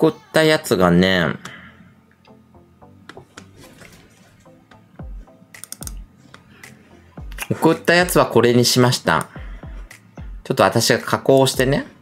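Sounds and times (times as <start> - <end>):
quiet background music: 0.0 - 12.0
keyboard and mouse clicks: 5.5 - 6.0.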